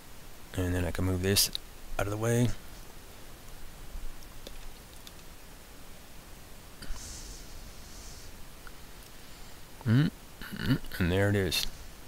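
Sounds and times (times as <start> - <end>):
microphone hiss: 0.0 - 12.0
short soft hiss: 6.8 - 9.6.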